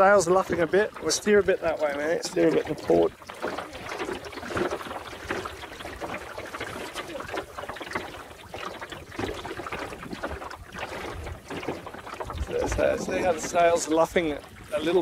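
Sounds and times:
water splashing against boat hull: 0.0s - 15.0s.

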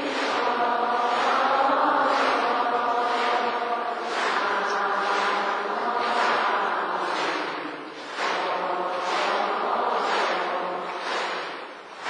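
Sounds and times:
many voices chanting in unison: 0.0s - 12.0s.

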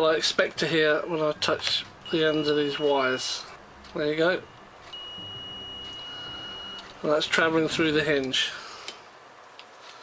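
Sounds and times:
multimeter high beep: 2.0s - 3.5s, 4.4s - 6.9s.

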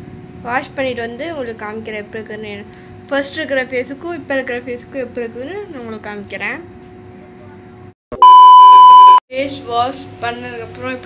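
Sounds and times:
loud steady test beep: 8.1s - 9.2s.

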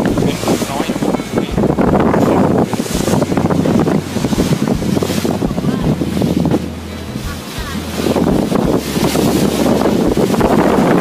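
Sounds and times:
rushing water: 0.0s - 11.0s
wind buffeting microphone: 0.0s - 11.0s.

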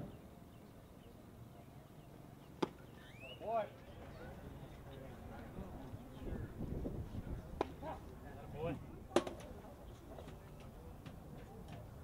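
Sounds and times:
baseball sharp impact: 2.6s - 2.8s.

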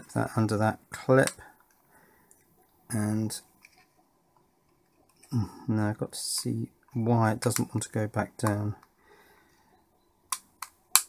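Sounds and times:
sharp plastic clicks: 10.3s - 11.0s.

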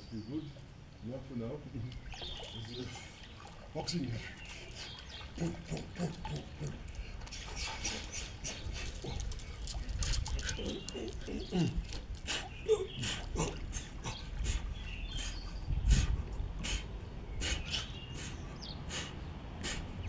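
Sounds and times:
dogs vocalizing: 4.2s - 20.0s.

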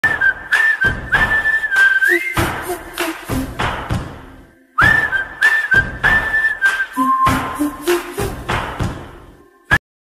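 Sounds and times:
whistled tune: 0.0s - 3.6s, 4.6s - 8.7s
beat with regular hits: 2.4s - 6.3s, 7.2s - 9.4s.

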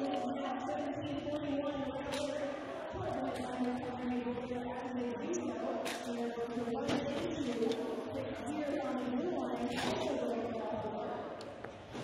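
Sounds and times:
crowd noise in hall: 0.0s - 12.0s.

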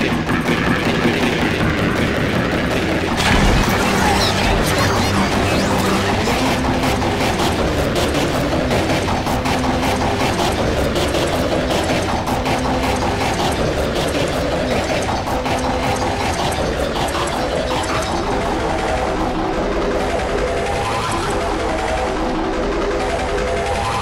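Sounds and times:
overlapping music and effects: 2.8s - 24.0s.

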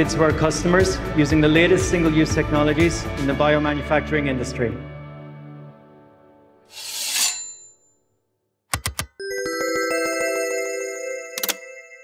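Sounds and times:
pulsing bell-like chime tones: 9.2s - 12.0s.

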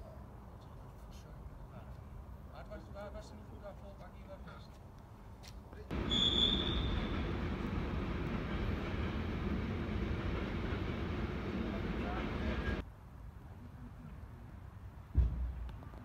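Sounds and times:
high squeal: 5.9s - 9.4s
train rumbling past: 5.9s - 12.8s.

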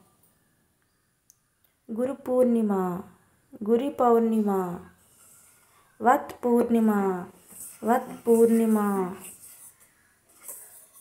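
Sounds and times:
person speaking: 1.9s - 5.0s, 6.0s - 9.8s.

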